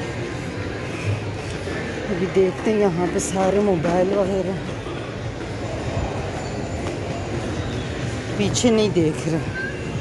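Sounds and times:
busy shopping mall rumble: 0.0 - 10.0.

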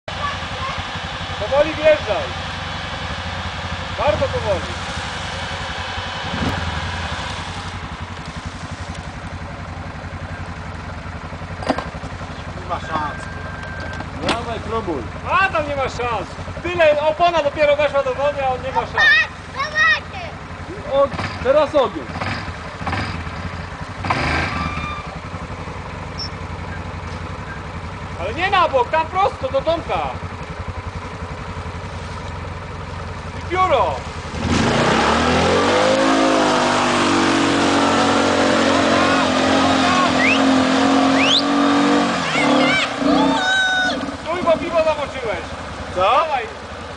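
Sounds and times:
quad bike engine at low revs: 0.1 - 46.9.

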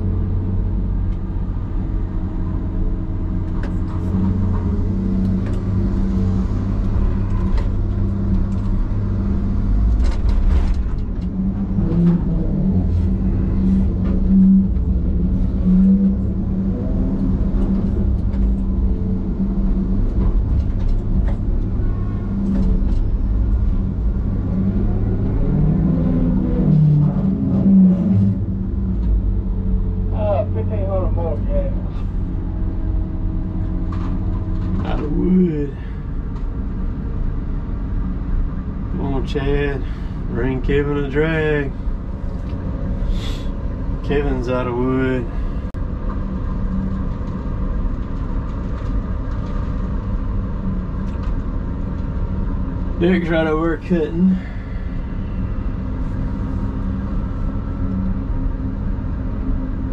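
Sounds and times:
diesel engine and hydraulics drone: 0.0 - 59.9.

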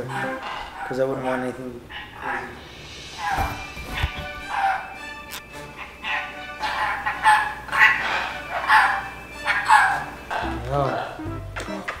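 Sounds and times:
background music: 0.0 - 12.0
parrot chattering: 0.0 - 12.0.

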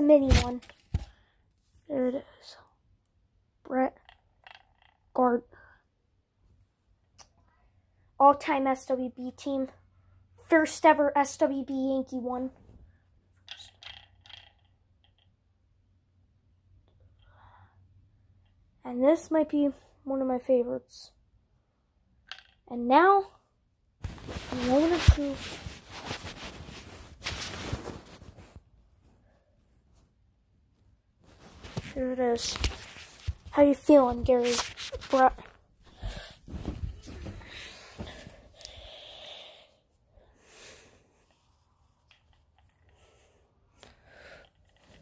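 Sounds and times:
faint rustles: 24.0 - 30.1, 34.2 - 38.6.

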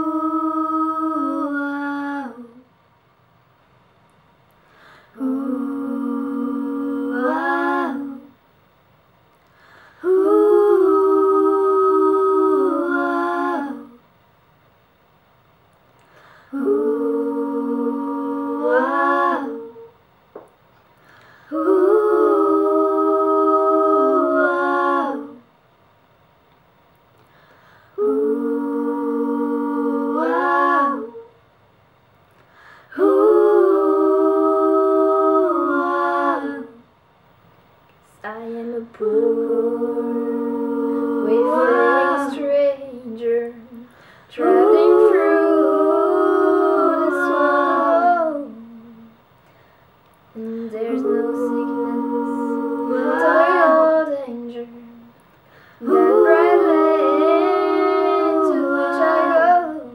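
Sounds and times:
soft breath: 4.5 - 5.2, 9.4 - 10.1, 16.0 - 16.6, 20.9 - 21.6, 27.2 - 28.0, 32.4 - 33.0, 43.8 - 44.4, 49.4 - 50.8, 55.3 - 55.8.

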